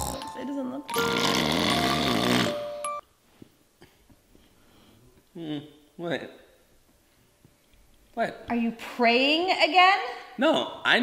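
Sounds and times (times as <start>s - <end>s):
man snoring loudly: 1.0s - 2.8s.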